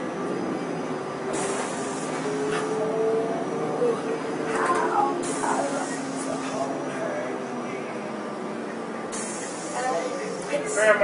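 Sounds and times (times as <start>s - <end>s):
bus engine drone: 0.0s - 11.0s.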